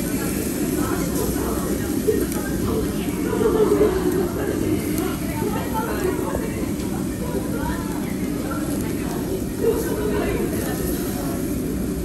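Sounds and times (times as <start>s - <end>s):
indistinct diners chatter: 0.0s - 12.0s.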